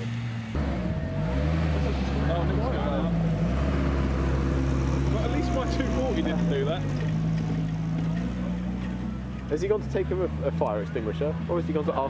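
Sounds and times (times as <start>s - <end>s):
car engine at steady revs: 0.0s - 12.0s
voices chattering and laughing: 0.7s - 12.0s.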